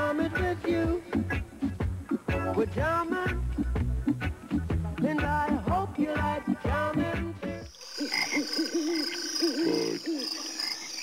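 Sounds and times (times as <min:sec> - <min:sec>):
frogs croaking: 0:07.6 - 0:11.0
insects chirring: 0:07.6 - 0:11.0.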